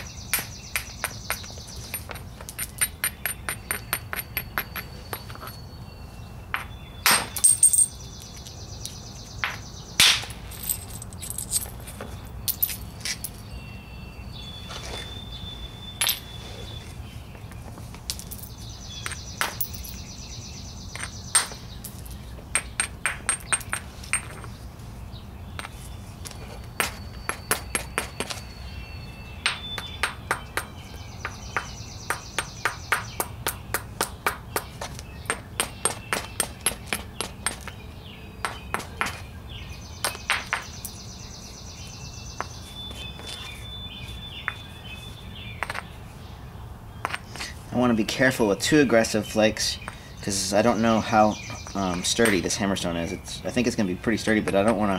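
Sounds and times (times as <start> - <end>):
hammerstone striking flint: 0.0 - 5.6.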